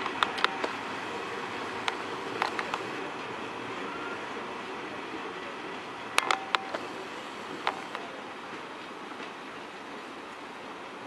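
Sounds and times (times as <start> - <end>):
train rumbling on tracks: 0.0 - 11.0.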